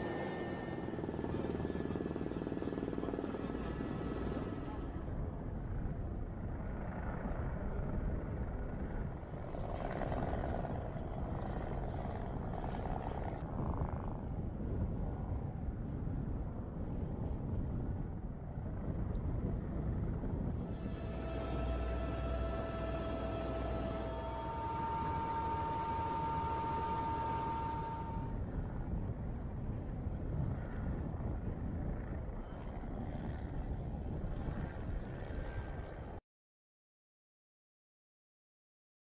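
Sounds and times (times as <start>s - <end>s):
low rumbling noise: 13.5s - 36.2s.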